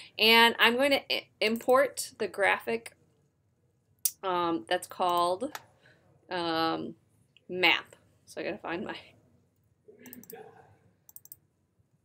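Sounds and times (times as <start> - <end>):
computer mouse clicking: 10.0 - 10.4, 11.1 - 11.4.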